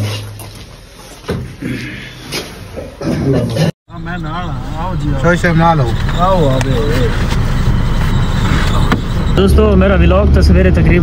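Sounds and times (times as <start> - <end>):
low rumble of engines and tyres: 3.9 - 11.0.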